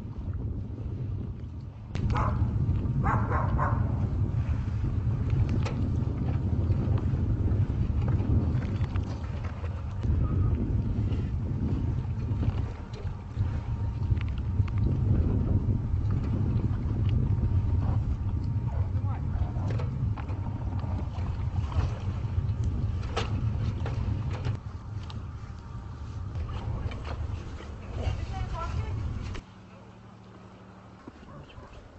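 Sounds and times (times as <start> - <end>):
ship engine rumbling: 0.0 - 31.9.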